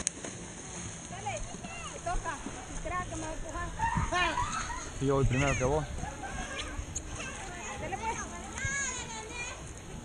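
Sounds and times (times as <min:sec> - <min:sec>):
children playing and calling out: 0:03.7 - 0:09.8.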